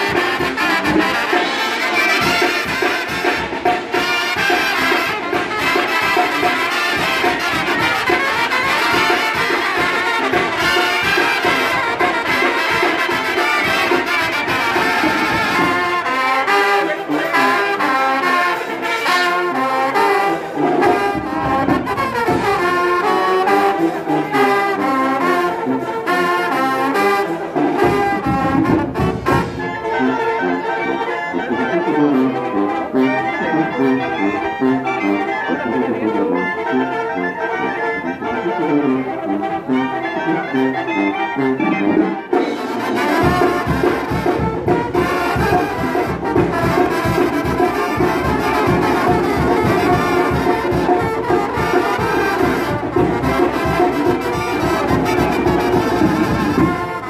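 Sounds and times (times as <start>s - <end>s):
drums: 0.0s - 57.0s
trumpets trombones and clarinets: 0.0s - 57.0s.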